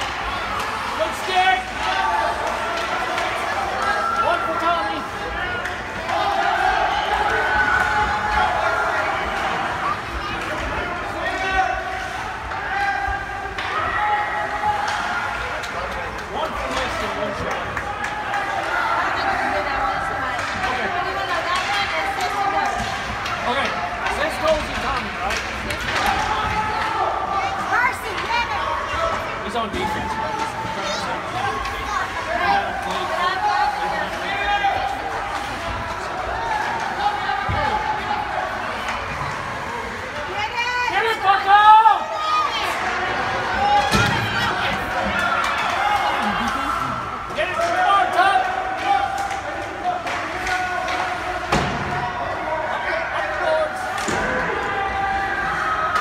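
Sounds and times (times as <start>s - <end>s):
hockey sticks and puck clacking: 0.0s - 41.5s, 42.2s - 56.0s
spectators calling out: 25.9s - 56.0s.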